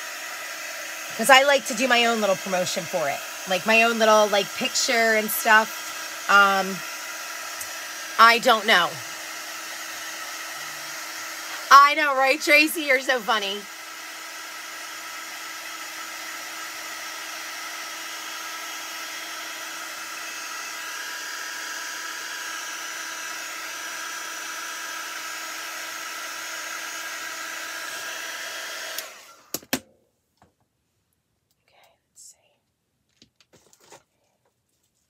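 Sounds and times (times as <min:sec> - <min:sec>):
heat gun blowing: 0:00.0 - 0:29.8.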